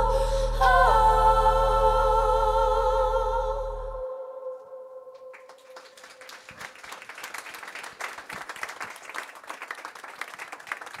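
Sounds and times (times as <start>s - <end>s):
audience applauding: 5.3s - 11.0s.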